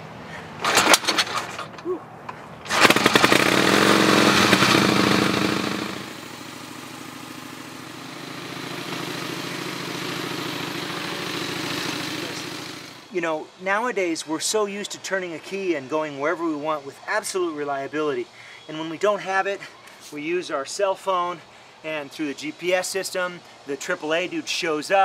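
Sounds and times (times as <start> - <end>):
motorcycle engine starting and idling: 0.6 - 13.1.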